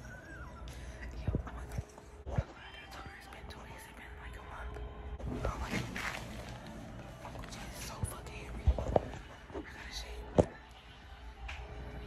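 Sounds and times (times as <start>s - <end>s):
woman whispering: 0.6s - 6.0s, 7.2s - 10.5s.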